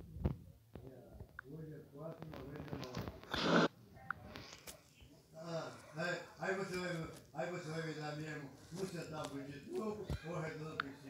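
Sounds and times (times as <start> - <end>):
short loud rush of noise: 3.3 - 3.7.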